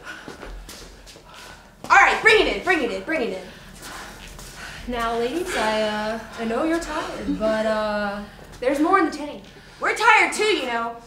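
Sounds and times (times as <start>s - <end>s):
footsteps on hard floor: 0.1s - 9.7s.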